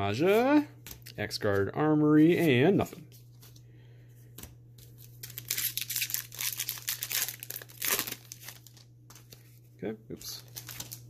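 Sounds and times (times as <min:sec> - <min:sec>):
foil wrapper tearing and crinkling: 0:05.2 - 0:08.9, 0:10.4 - 0:11.0.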